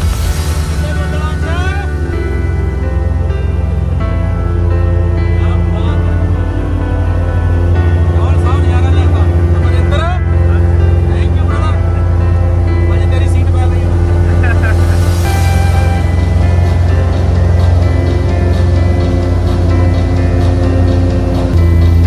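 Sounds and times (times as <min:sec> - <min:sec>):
light aircraft engine drone: 0:00.0 - 0:22.0
music: 0:00.0 - 0:22.0.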